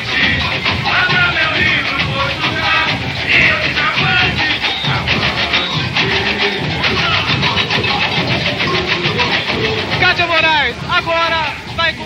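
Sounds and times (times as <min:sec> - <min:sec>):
samba percussion drumming: 0:00.0 - 0:12.0.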